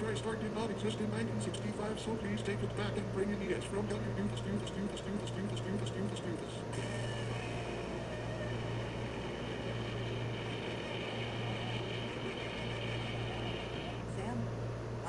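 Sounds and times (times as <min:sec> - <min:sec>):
high-pitched whine: 0:00.0 - 0:14.6
steady low hum: 0:00.0 - 0:15.0.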